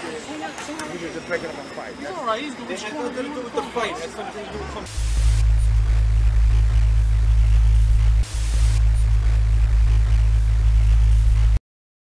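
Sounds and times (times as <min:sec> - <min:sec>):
low-pitched hum: 0:04.9 - 0:11.6.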